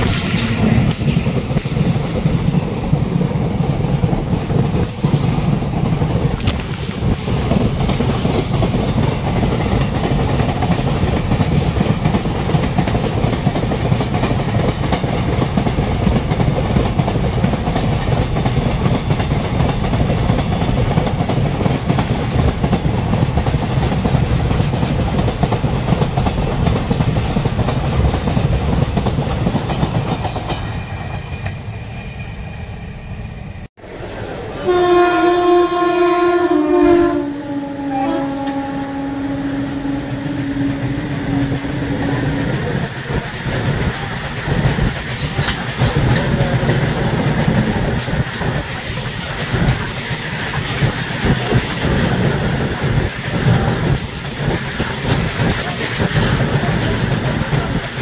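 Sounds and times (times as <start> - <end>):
freight train rumbling past: 0.0 - 58.0
train horn: 34.6 - 42.8.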